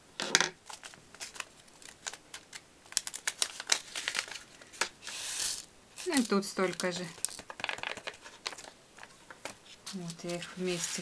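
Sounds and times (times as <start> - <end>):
paper crinkling: 0.6 - 11.0.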